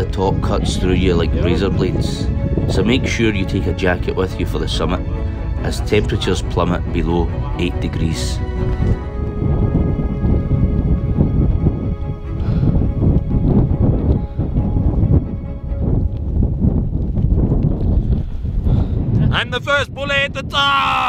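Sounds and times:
music with sustained tones: 0.0 - 17.5
wind rumbling on microphone: 0.0 - 21.0.

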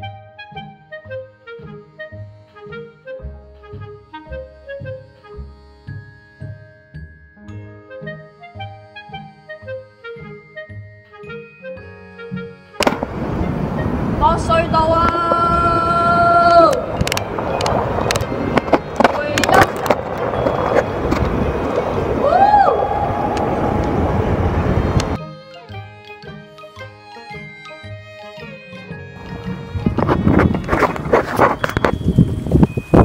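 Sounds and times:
background music with stepped notes: 0.0 - 13.0, 25.2 - 33.0
wind rush on microphone: 12.8 - 25.2, 29.2 - 33.0.

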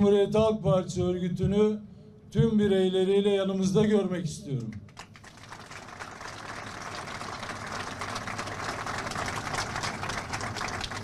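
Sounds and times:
crowd applauding: 4.9 - 11.0.

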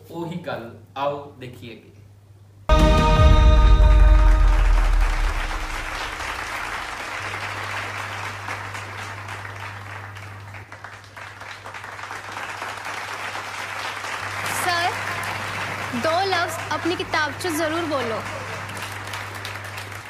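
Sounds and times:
low steady hum: 0.0 - 10.6
audience applauding: 3.9 - 20.0.

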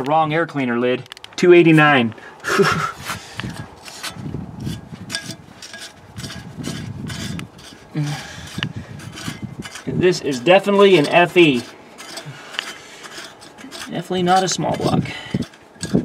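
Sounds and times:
rusty nut scraping and grating: 1.1 - 16.0
glove rubbing metal lid: 2.5 - 16.0.

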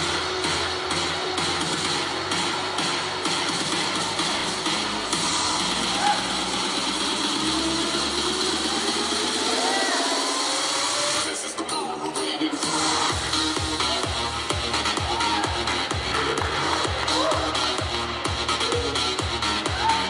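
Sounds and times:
electronic dance music: 0.0 - 20.0
steady bass drum beat: 13.1 - 20.0.

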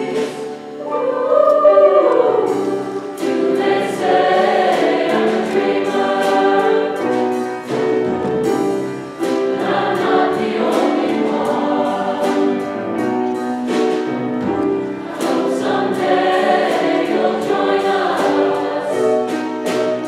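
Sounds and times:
choir singing in harmony: 0.0 - 20.0
piano: 0.0 - 20.0
drum kit: 2.4 - 20.0.

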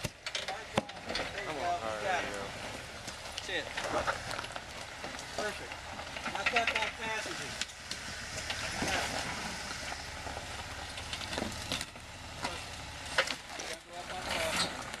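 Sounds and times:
engine running low: 0.0 - 15.0
tyres crunching on stone: 0.0 - 15.0.

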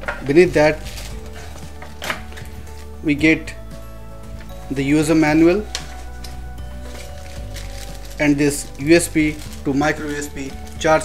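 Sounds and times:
cardboard and plastic bag handling: 0.0 - 3.0, 5.6 - 11.0
soft background music: 0.0 - 11.0.

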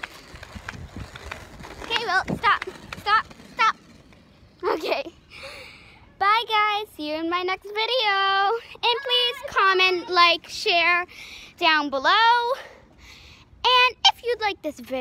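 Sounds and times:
child calling: 8.8 - 10.3.

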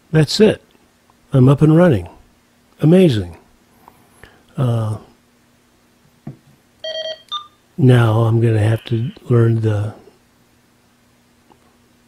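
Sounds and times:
electronic key beep: 6.9 - 7.6.

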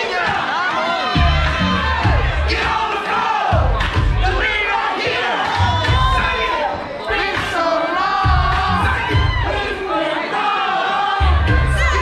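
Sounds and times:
crowd shouting and singing along: 0.0 - 12.0
dance music with heavy bass: 1.2 - 2.9, 7.3 - 9.7, 11.2 - 12.0.

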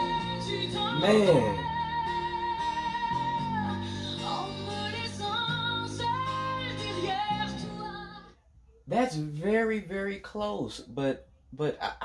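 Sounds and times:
woman singing with vibrato: 0.0 - 8.4.

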